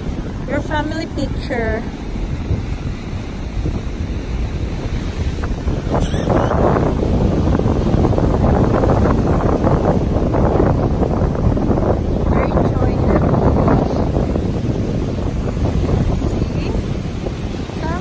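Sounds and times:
surf breaking on beach: 0:00.0 - 0:18.0
wind buffeting microphone: 0:00.0 - 0:18.0.

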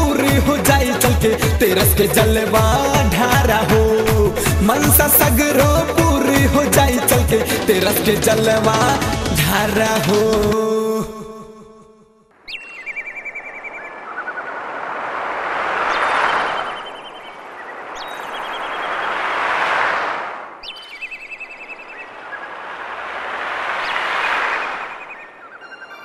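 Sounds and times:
bird chirps and trills: 0:12.4 - 0:14.8, 0:15.8 - 0:19.4, 0:20.6 - 0:23.0, 0:23.7 - 0:26.0
rushing noise: 0:13.3 - 0:26.0.

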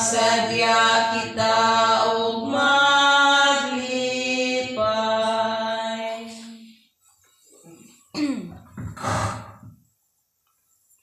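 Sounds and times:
person clearing throat and coughing: 0:07.7 - 0:09.7.

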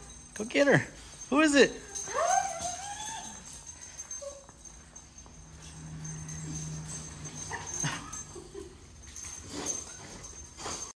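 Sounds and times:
dog whimpering: 0:01.8 - 0:04.6.

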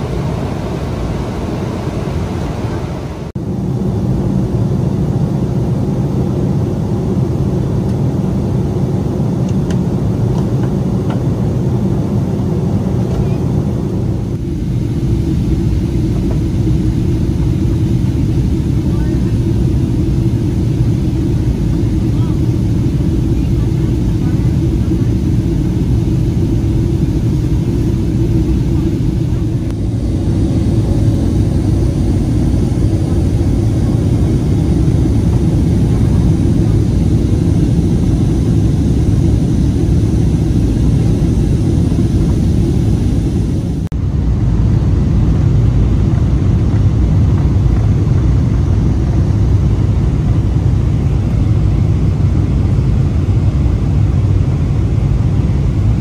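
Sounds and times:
airplane cabin engine noise: 0:00.0 - 0:56.0.

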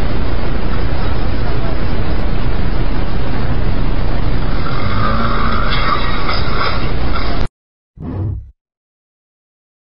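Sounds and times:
loud road traffic: 0:00.0 - 0:08.5.

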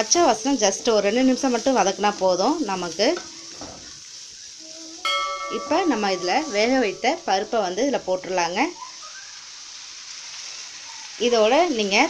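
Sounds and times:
food sizzling in a frying pan: 0:00.0 - 0:12.0.

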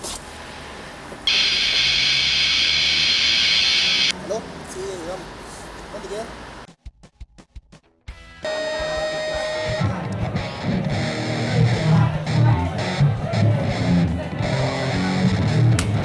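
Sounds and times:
rock music with electric guitar: 0:08.1 - 0:16.0.

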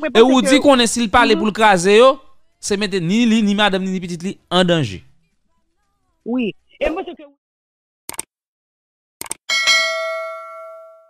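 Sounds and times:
notification bell ding: 0:09.5 - 0:11.0.

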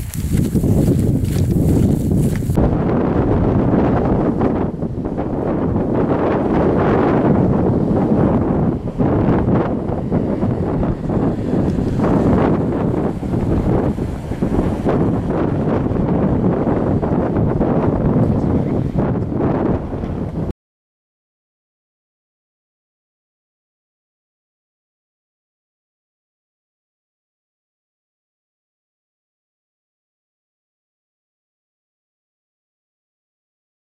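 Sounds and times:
wind buffeting microphone: 0:00.0 - 0:20.5.

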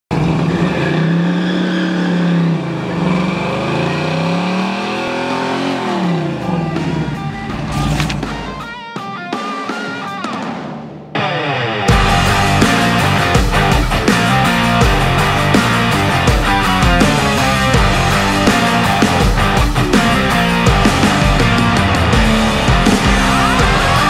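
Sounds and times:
car engine revving: 0:00.1 - 0:08.7, 0:11.9 - 0:24.0
guitar music: 0:03.5 - 0:24.0.

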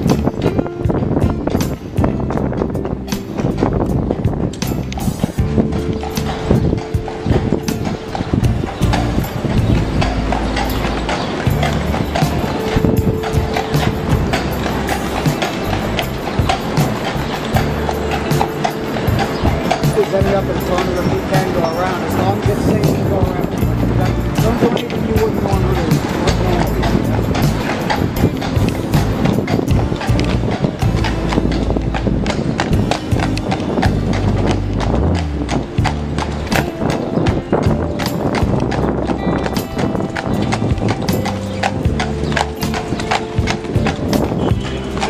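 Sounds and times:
horse hooves clip-clopping on pavement: 0:00.0 - 0:45.0
music with deep bass: 0:00.0 - 0:45.0.

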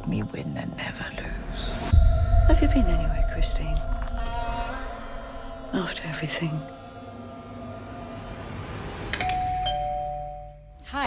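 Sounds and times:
two-note doorbell chime: 0:09.2 - 0:10.7.

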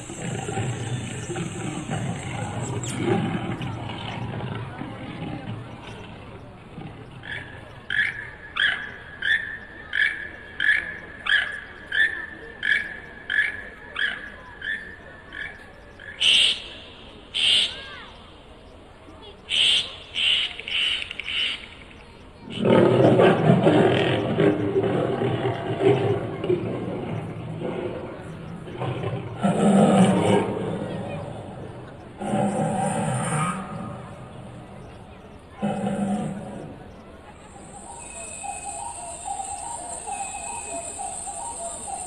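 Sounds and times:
tiger roar: 0:00.0 - 0:07.7, 0:22.4 - 0:37.9
toucan croaking call: 0:07.2 - 0:17.8, 0:19.5 - 0:21.7, 0:32.1 - 0:42.0.

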